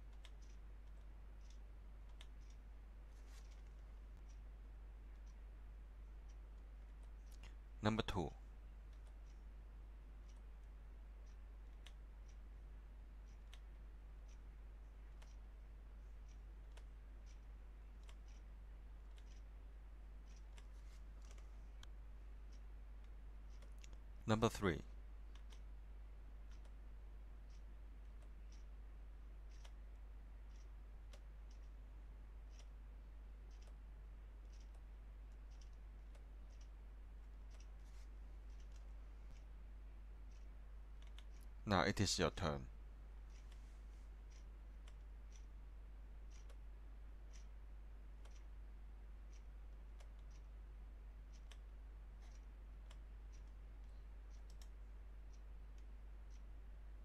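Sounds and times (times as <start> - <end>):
faint computer mouse clicks: 0.0 - 2.6, 10.2 - 12.4, 13.2 - 13.7, 15.1 - 15.4, 16.2 - 19.5, 20.2 - 24.1, 25.3 - 25.7, 29.4 - 31.8, 32.4 - 32.8, 33.4 - 33.8, 34.4 - 39.6, 40.3 - 41.5, 46.3 - 46.7, 51.2 - 56.5
faint regular clicks: 0.0 - 57.0
low electrical hum: 0.0 - 57.0.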